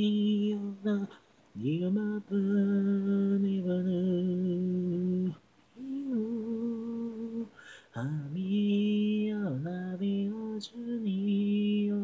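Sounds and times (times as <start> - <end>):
person singing a cappella: 0.0 - 12.0.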